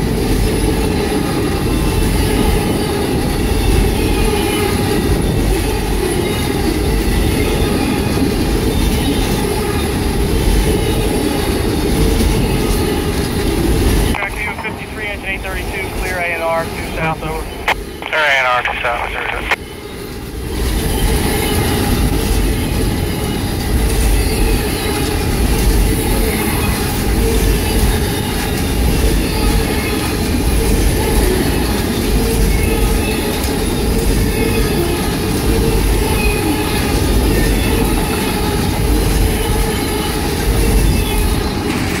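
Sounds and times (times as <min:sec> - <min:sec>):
train wheels rumbling on rail: 0:00.0 - 0:14.2, 0:19.9 - 0:42.0
thin steady whine: 0:14.1 - 0:19.6.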